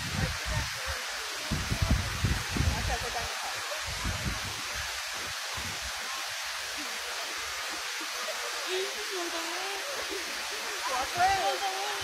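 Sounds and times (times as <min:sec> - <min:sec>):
wind rumble on microphone: 0:00.0 - 0:05.9
fountain water jets hissing: 0:00.0 - 0:12.0.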